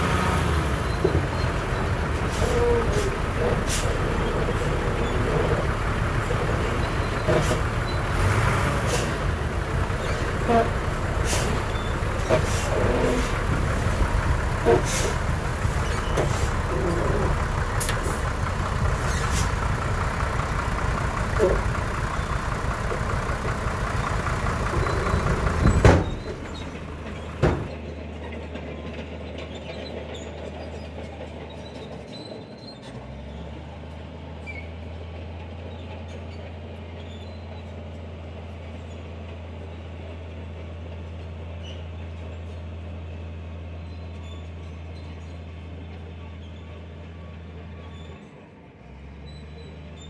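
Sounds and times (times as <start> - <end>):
bulldozer running under load: 0.0 - 50.0.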